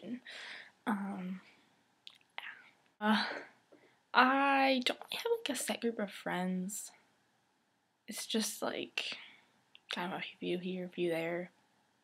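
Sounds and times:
young woman speaking: 0.0 - 0.3, 0.9 - 1.5, 2.4 - 3.5, 4.2 - 7.0, 9.9 - 11.5.

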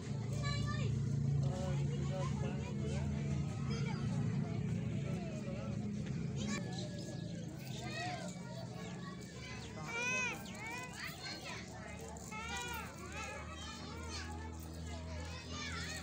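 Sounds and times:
children calling and shouting: 0.0 - 16.0.

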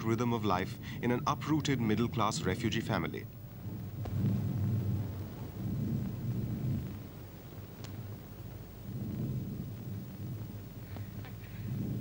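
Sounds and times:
low rumble of thunder: 0.0 - 12.0.

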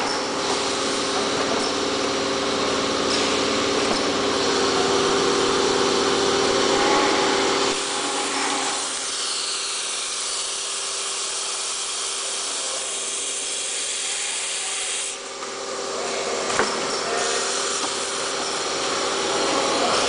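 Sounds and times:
low machine rumble: 0.0 - 10.8
machine humming: 0.0 - 20.0
air hissing: 7.2 - 15.2, 17.0 - 18.9.

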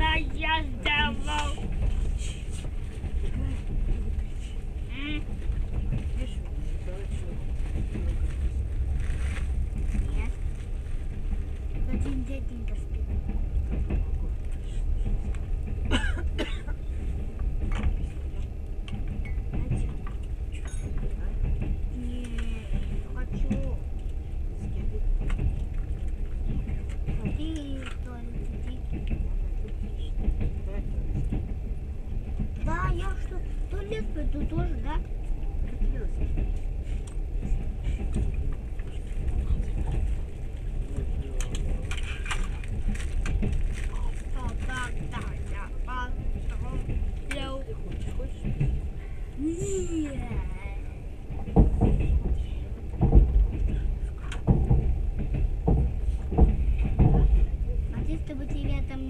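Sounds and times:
train rumbling on track: 0.0 - 59.0.

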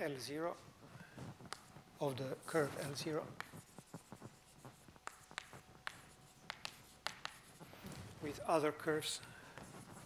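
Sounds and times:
chalk tapping and scratching: 1.1 - 10.0.

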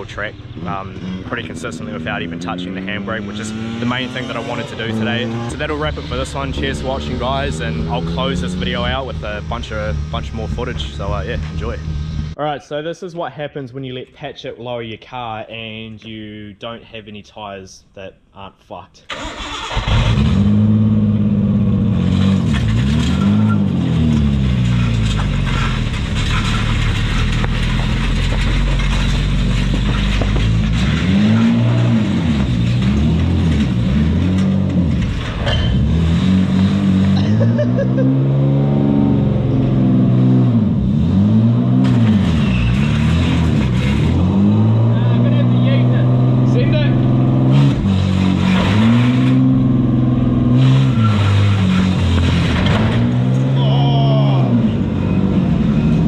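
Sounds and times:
car engine revving: 0.0 - 12.4, 19.1 - 56.0
car underside scraping concrete: 22.1 - 37.2, 41.8 - 44.6, 47.5 - 49.4, 50.6 - 53.5.

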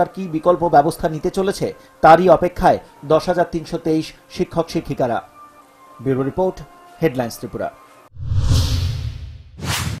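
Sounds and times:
whoosh sound effects: 8.2 - 10.0.

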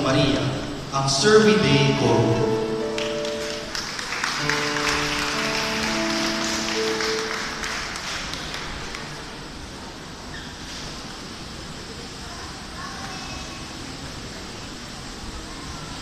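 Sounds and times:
held musical chords: 0.0 - 9.3
audience applauding: 2.8 - 9.6.

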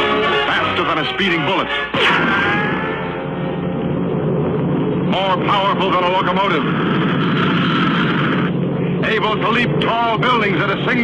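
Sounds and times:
steady low hum: 2.7 - 11.0.

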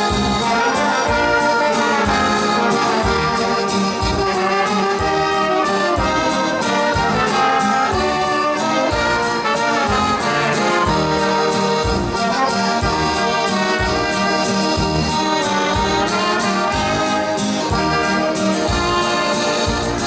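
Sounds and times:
keyboard: 0.0 - 20.0
saxophone: 0.0 - 20.0
steady beat: 0.0 - 20.0
trombone: 0.0 - 20.0
trumpet: 0.0 - 20.0.

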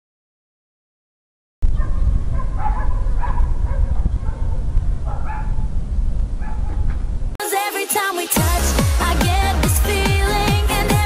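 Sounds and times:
wind on microphone: 1.6 - 7.4
dog barking: 1.7 - 5.7, 6.4 - 6.9.

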